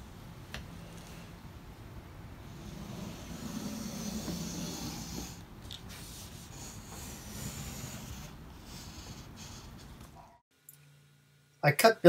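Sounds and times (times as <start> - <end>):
wood scraping over paper: 2.5 - 9.9.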